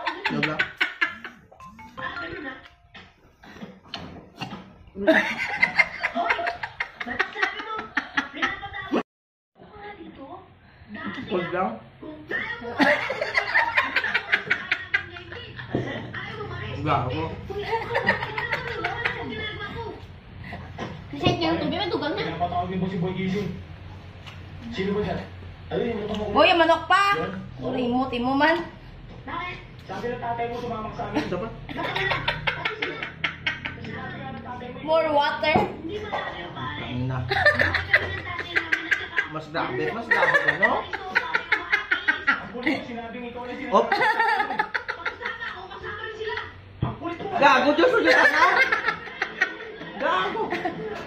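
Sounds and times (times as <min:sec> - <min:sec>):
people laughing: 0:00.0 - 0:01.4, 0:05.0 - 0:08.9, 0:12.8 - 0:16.0, 0:17.5 - 0:19.4, 0:31.1 - 0:34.0, 0:37.3 - 0:42.8, 0:43.6 - 0:46.5, 0:47.9 - 0:51.0.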